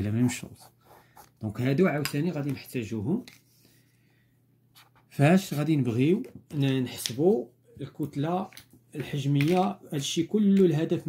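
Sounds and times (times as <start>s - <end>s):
man speaking: 0.0s - 0.8s, 1.4s - 3.3s, 5.1s - 11.0s
pen scratching on paper: 0.0s - 1.4s.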